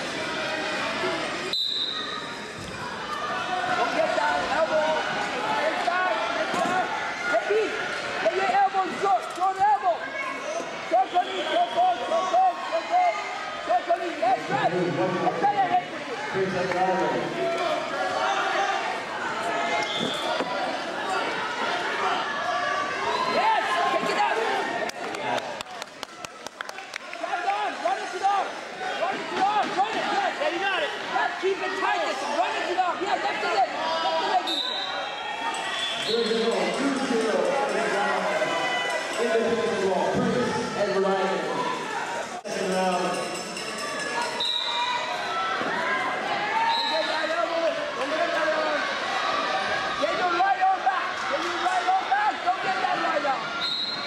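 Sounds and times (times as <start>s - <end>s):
voices and shouts echoing: 0.0s - 54.0s
referee's whistle: 1.5s - 2.4s, 11.0s - 12.1s, 19.8s - 20.4s, 34.4s - 36.5s, 44.3s - 45.0s, 46.6s - 47.4s, 53.6s - 54.0s.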